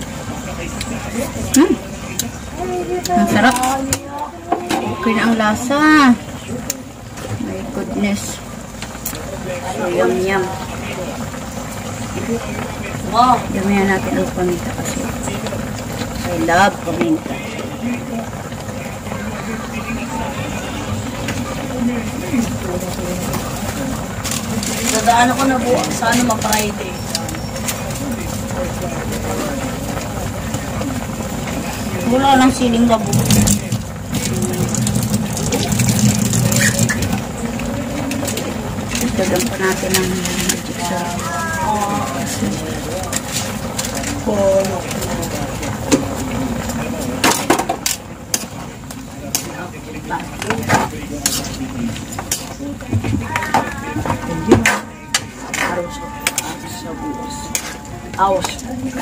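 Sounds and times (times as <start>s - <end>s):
food simmering in a pan: 5.2s - 53.9s
faint voice murmur: 14.6s - 32.4s, 33.1s - 59.0s.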